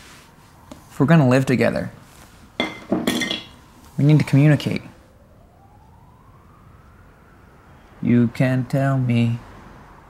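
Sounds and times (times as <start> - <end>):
faint siren wailing: 0.0 - 10.0.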